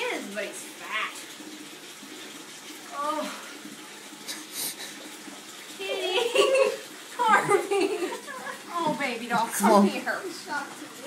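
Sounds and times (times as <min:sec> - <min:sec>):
water running into bathtub: 0:00.0 - 0:11.0.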